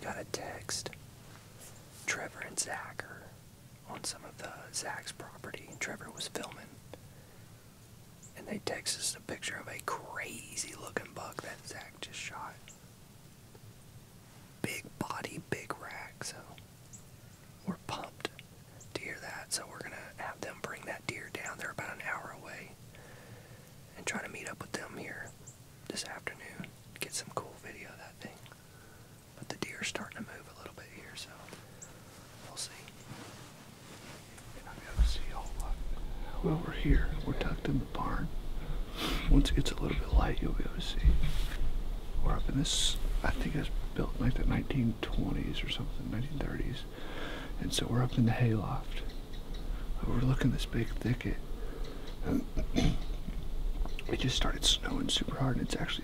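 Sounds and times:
man whispering: 0:00.0 - 0:01.0, 0:02.0 - 0:07.1, 0:08.4 - 0:12.7, 0:14.6 - 0:16.6, 0:17.6 - 0:41.6, 0:42.2 - 0:49.2, 0:49.8 - 0:53.4, 0:54.0 - 0:56.0.

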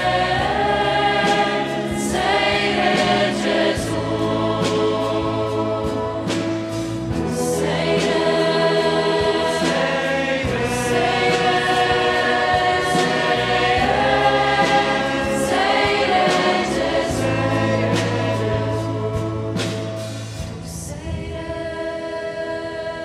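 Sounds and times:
mixed choir singing a hymn: 0:00.0 - 0:23.0.

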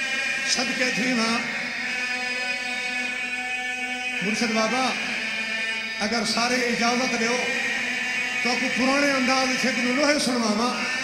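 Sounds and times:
steady droning tone: 0:00.0 - 0:11.0.

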